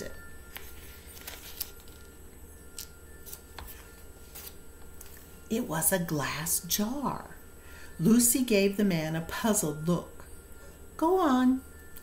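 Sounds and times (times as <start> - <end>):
low steady hum: 0.0 - 12.0
book pages rustling: 0.4 - 2.2, 3.2 - 5.3.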